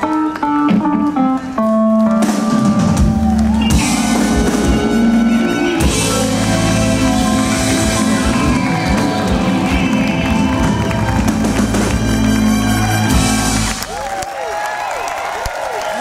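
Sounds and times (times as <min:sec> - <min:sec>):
live rock band with horns: 0:00.0 - 0:14.0.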